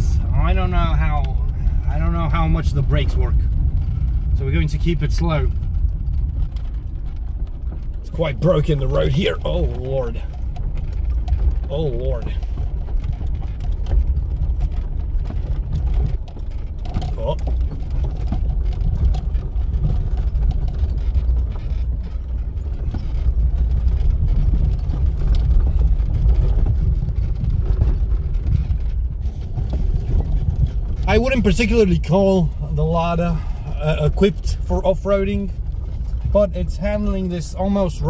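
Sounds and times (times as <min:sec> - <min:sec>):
car and tyres rumbling on gravel: 0:00.0 - 0:38.0
suspension knocks and rattles: 0:00.0 - 0:38.0.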